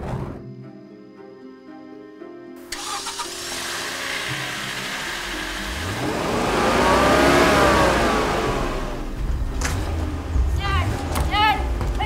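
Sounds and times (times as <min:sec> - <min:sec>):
car engine revving: 0:02.8 - 0:12.0.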